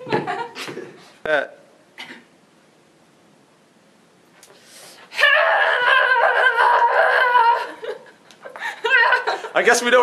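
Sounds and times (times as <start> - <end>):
person laughing loudly: 5.7 - 9.6.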